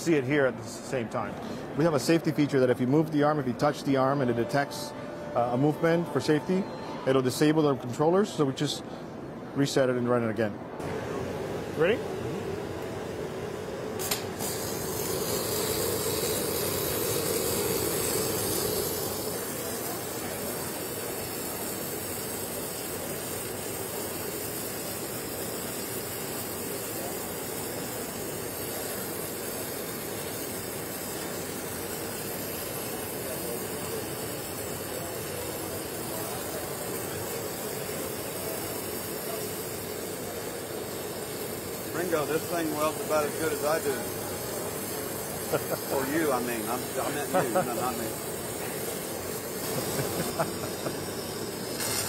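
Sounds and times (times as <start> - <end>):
welding arc hissing: 10.8 - 52.0
welding arc click: 14.0 - 20.0, 49.6 - 52.0.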